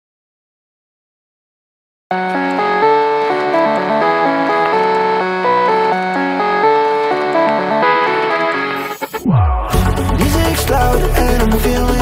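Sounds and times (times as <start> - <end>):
instrumental music: 2.1 - 12.0.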